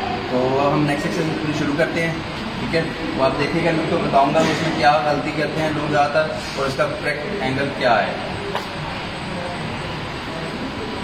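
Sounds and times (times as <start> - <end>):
faint indistinct voices: 0.0 - 11.0
steady rushing hall noise: 0.0 - 11.0.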